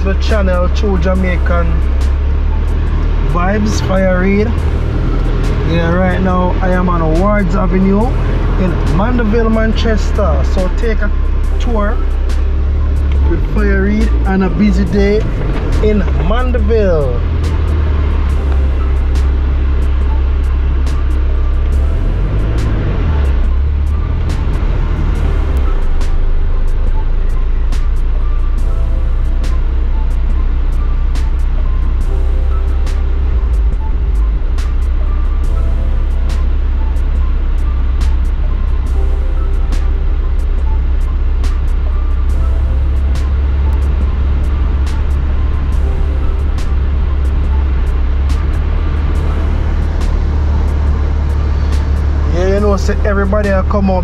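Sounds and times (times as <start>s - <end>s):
music in held notes: 0.0s - 54.0s
street traffic rumble: 0.0s - 54.0s.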